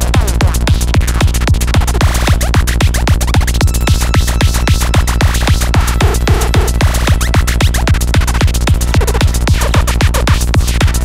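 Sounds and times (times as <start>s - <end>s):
psytrance music: 0.0s - 11.0s.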